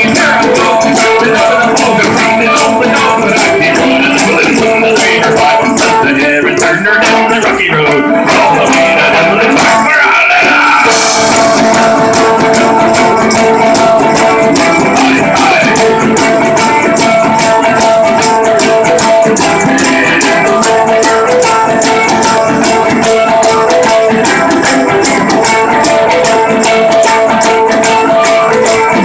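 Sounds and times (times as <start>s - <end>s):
drum beat: 0.0s - 29.0s
shaken percussion: 0.0s - 29.0s
strummed mandolin: 0.0s - 29.0s.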